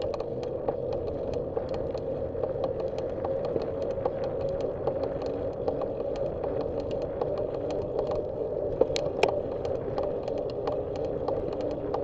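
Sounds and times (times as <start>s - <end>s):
bicycle tyres on asphalt: 0.0s - 12.0s.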